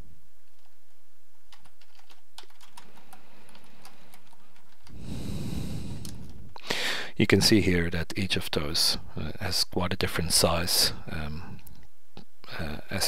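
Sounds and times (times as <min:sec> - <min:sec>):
computer keyboard typing: 0:01.5 - 0:05.0.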